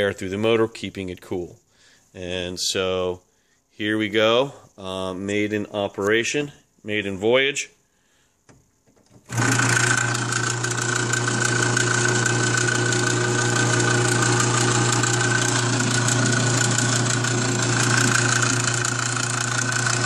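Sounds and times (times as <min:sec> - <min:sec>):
motor humming: 0:09.3 - 0:20.0.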